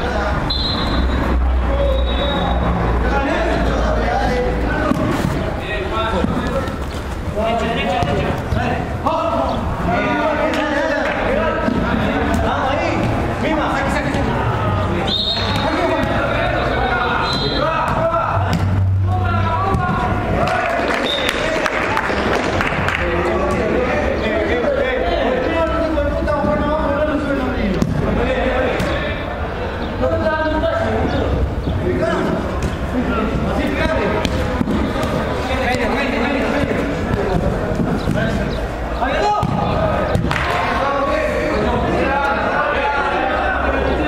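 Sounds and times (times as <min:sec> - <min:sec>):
players shouting: 0:00.0 - 0:44.0
ball being kicked: 0:07.9 - 0:08.7, 0:33.7 - 0:38.5, 0:39.3 - 0:40.6
football kick: 0:36.5 - 0:38.5, 0:39.3 - 0:40.6.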